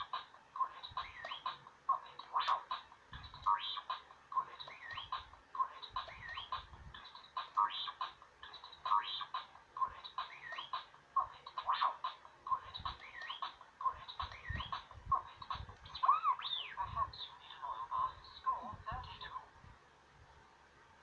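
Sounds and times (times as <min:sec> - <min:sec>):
steady beat: 0:00.0 - 0:15.8.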